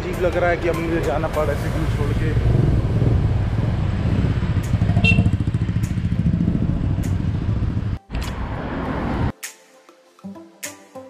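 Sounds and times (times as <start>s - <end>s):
street traffic: 0.0s - 9.4s
motorbike engine running: 2.2s - 8.0s.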